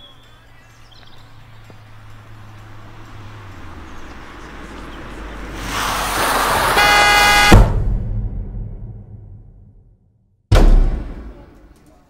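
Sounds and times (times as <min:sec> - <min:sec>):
car approaching fast: 0:01.3 - 0:07.5
car horn blaring: 0:06.8 - 0:07.7.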